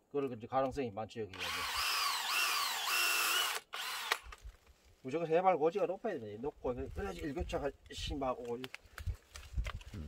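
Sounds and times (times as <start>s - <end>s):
cordless drill boring into wood: 1.3s - 4.4s.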